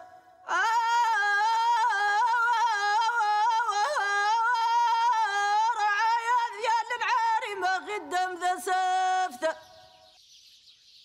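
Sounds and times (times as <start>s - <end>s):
woman singing unaccompanied: 0.0s - 9.9s.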